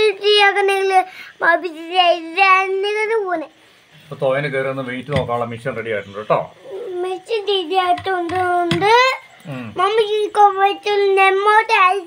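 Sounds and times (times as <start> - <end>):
young child singing: 0.0 - 3.5, 6.8 - 12.0.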